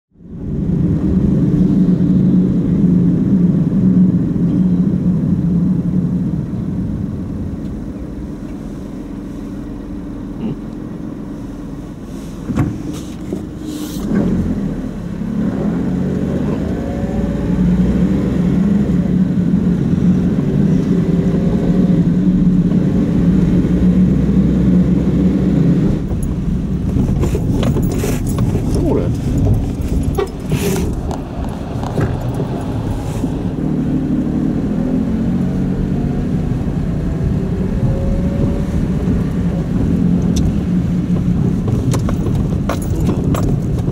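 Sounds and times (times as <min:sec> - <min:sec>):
car engine and road drone: 0:00.1 - 0:43.9.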